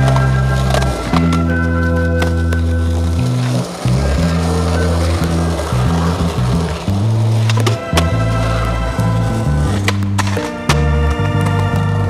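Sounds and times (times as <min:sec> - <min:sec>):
music with prominent bass line: 0:00.0 - 0:12.0
skateboard clacks: 0:00.0 - 0:12.0
skateboard wheels rolling on pavement: 0:00.0 - 0:12.0.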